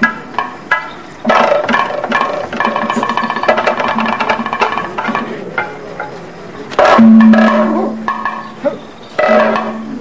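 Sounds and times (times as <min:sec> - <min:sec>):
ringing metallic percussion: 0:06.8 - 0:10.0.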